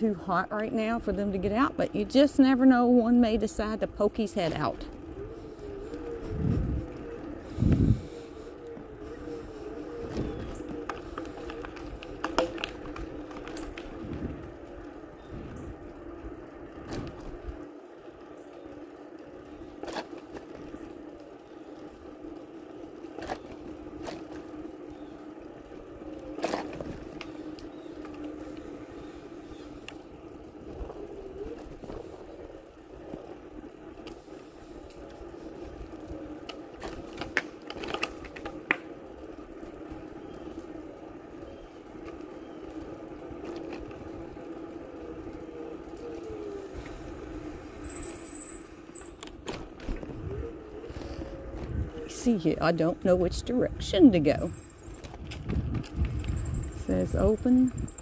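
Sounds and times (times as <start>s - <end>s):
bicycle rolling on concrete: 0.0s - 58.0s
bicycle knocks and rattles: 10.1s - 14.5s, 16.8s - 17.7s, 19.6s - 20.7s, 23.1s - 24.7s, 26.3s - 28.3s, 36.8s - 38.9s, 47.8s - 50.2s, 54.8s - 56.8s
bicycle brake squeal: 47.8s - 49.2s.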